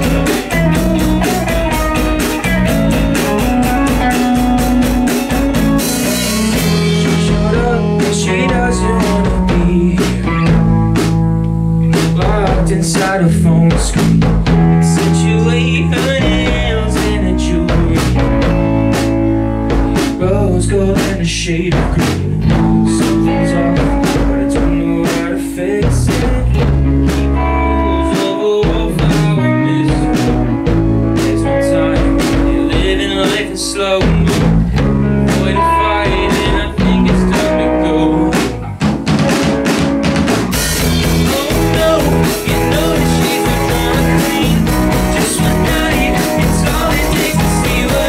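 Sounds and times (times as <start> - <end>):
dense drum strikes: 0.0 - 27.4, 28.1 - 48.0
rock band playing live: 0.0 - 48.0.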